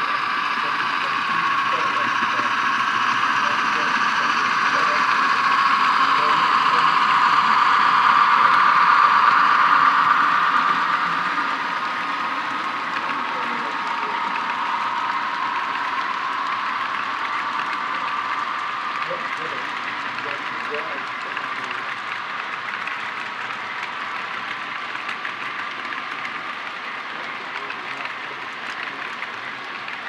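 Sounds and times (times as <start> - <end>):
model train wheels on track: 0.0 - 30.0.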